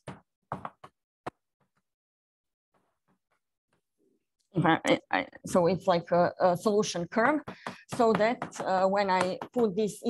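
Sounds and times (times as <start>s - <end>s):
chalk tapping on blackboard: 7.2s - 9.8s.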